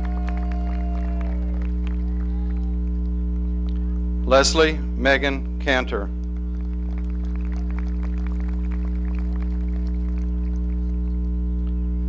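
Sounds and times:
scattered clapping: 0.0 - 3.8, 6.2 - 11.4
electrical mains hum: 0.0 - 12.0.

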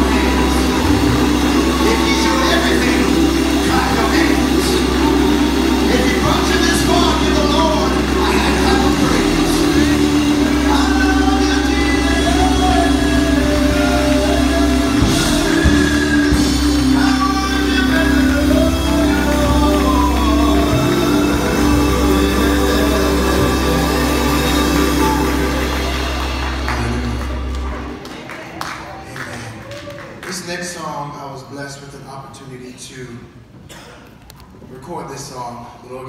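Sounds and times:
gospel singing over a band: 0.0 - 28.2
deep bass: 0.0 - 29.1.

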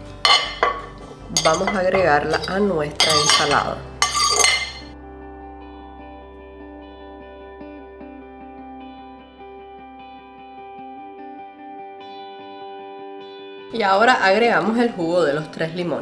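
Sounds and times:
soft guitar music: 0.0 - 16.0.

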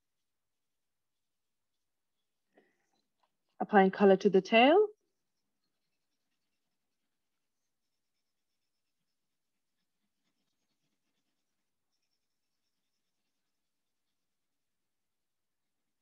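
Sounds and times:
colouring strokes on paper: 5.0 - 16.0.

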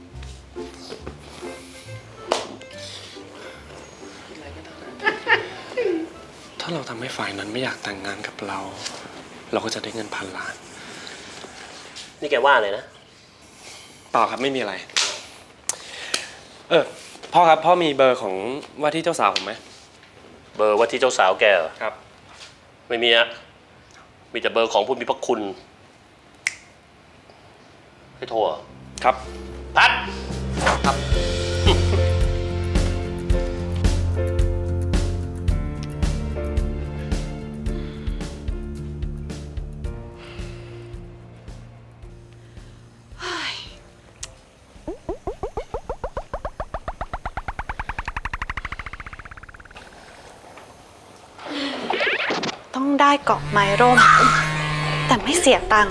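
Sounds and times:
upward-sliding comic blips: 44.9 - 50.1, 51.8 - 52.6.

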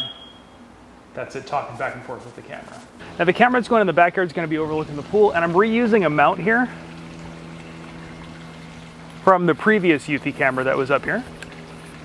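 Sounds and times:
pool pump humming: 0.0 - 12.0
faint water wash: 1.6 - 12.0.

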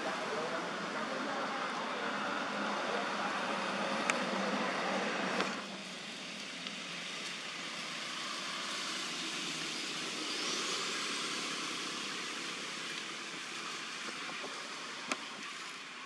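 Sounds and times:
faint rising whine: 0.0 - 16.0
rushing outdoor background noise: 0.0 - 16.0.

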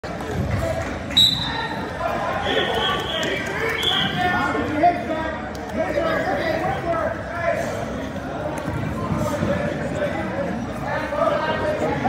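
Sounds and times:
voices echoing in a gym: 0.0 - 12.0
referee's whistle blast: 1.2 - 1.6.

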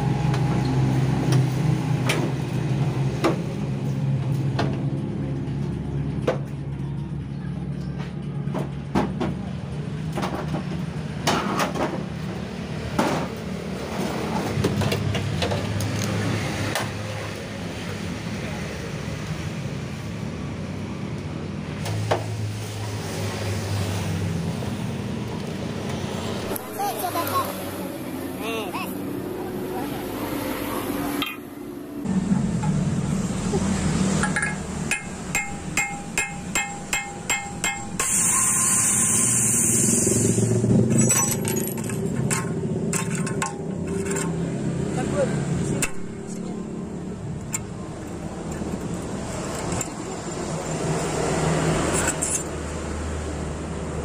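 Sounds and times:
metal and glass clinking: 34.2 - 38.1, 40.9 - 44.4.

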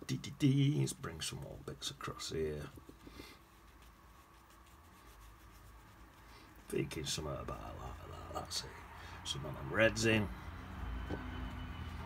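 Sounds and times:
brush dabbing paint on paper: 0.8 - 9.6.

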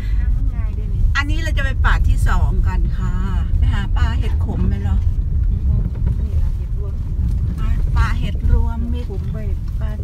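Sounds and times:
car driving on dirt track: 0.0 - 10.0.

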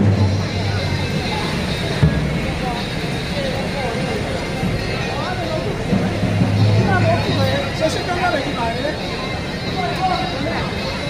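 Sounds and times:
street crowd chatter: 0.0 - 11.0.

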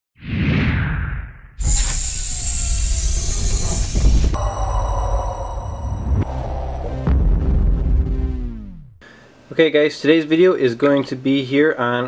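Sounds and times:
whoosh: 0.2 - 8.7.

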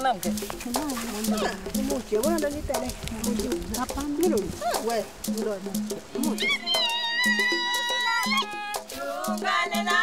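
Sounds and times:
percussive beat: 0.0 - 10.0
women singing: 6.3 - 10.0.

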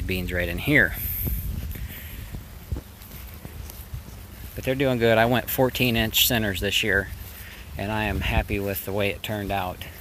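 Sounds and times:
plants rustling: 0.0 - 10.0
soft footsteps: 0.0 - 10.0
wind buffeting microphone: 0.0 - 10.0.

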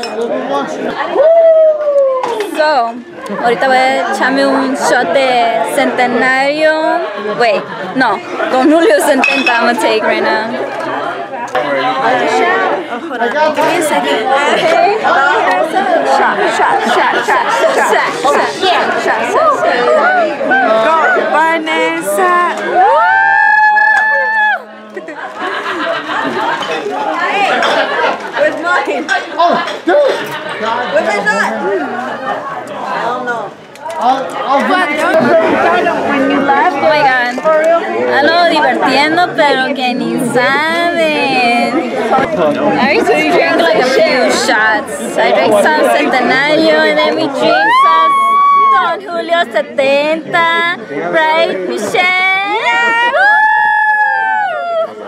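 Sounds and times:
party chatter: 0.0 - 55.0.

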